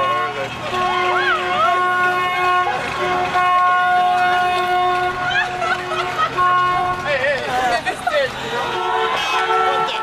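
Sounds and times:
car horns honking: 0.0s - 10.0s
people whooping and shouting: 1.1s - 2.0s, 5.2s - 6.4s.

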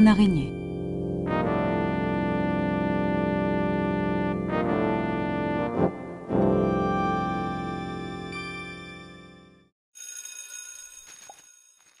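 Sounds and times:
shimmering bell-like chime: 8.3s - 12.0s.

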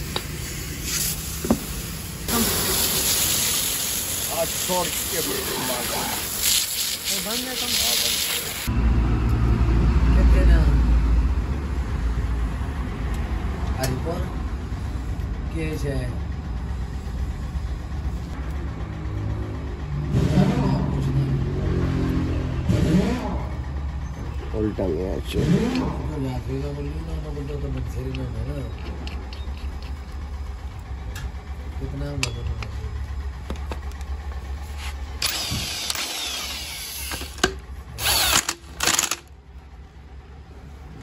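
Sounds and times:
high-pressure water jet hissing: 0.0s - 8.7s
engine running low rumble: 0.0s - 41.0s.

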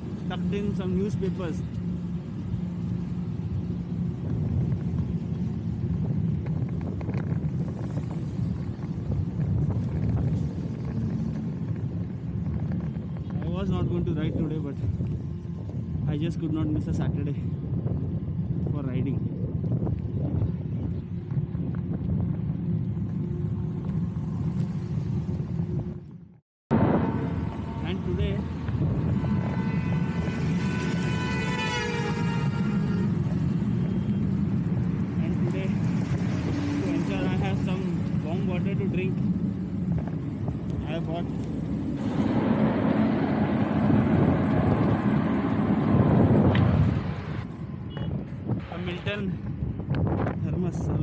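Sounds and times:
wind and road noise: 0.0s - 51.0s.

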